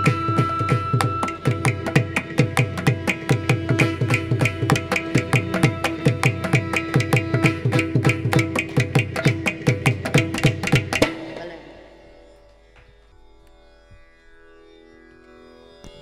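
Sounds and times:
hand drums playing rapid strokes: 0.0 - 12.0
tanpura drone: 0.0 - 16.0.

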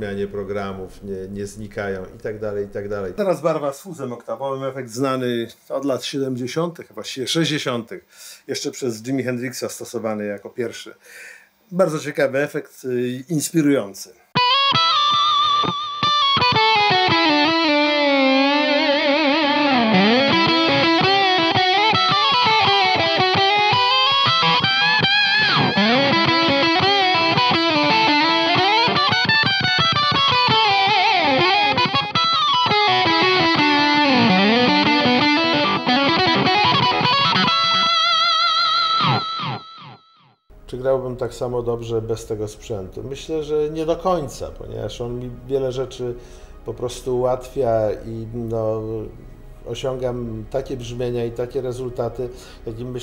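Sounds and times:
electric guitar lead with octave effect: 14.4 - 40.2.

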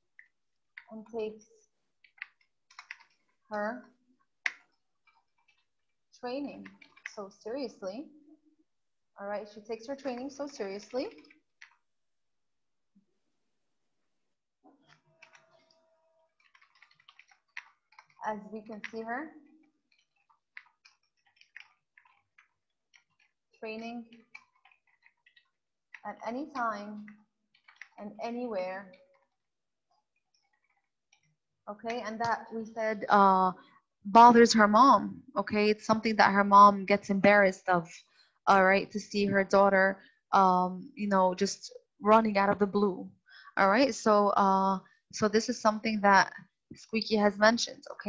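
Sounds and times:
computer keyboard typing: 2.0 - 3.3, 14.9 - 29.3.

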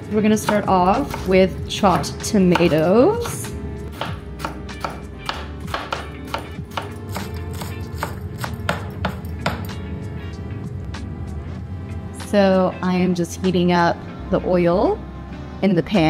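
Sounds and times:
background music: 0.0 - 16.0
knife chopping on wooden board: 1.9 - 9.8.

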